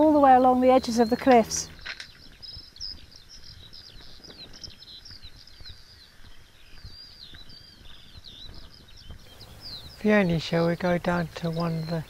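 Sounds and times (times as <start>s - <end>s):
songbird chirping and warbling: 0.0s - 12.0s.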